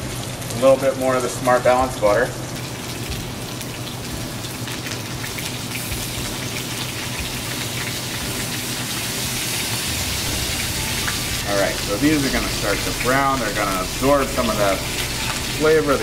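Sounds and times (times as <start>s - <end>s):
food sizzling in hot pans: 0.0s - 16.0s.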